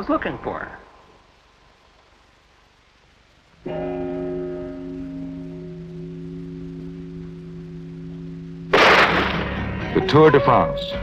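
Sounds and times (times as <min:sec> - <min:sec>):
clock bell striking: 0:03.7 - 0:08.7
starter's pistol crack: 0:08.7 - 0:09.6.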